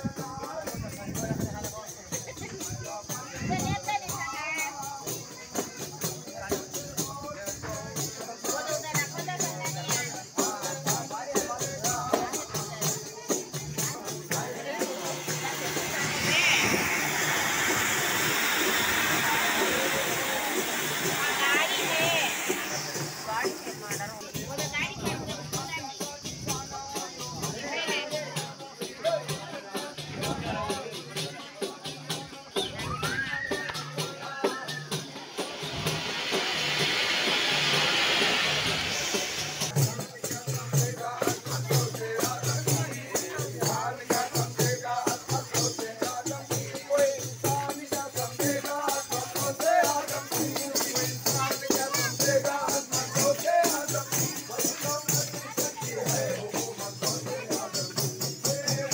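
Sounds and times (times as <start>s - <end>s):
crowd: 0.0s - 58.9s
rattling shaker: 0.0s - 58.9s
fireworks spraying sparks hissing: 1.6s - 28.8s, 33.5s - 58.9s
quick drum strikes: 10.4s - 26.6s
loud rushing wash: 14.5s - 24.4s, 34.8s - 39.8s.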